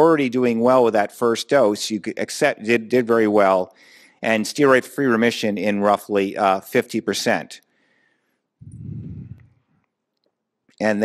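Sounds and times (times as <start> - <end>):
man speaking: 0.0 - 7.6
muffled microphone rumble: 8.6 - 9.6.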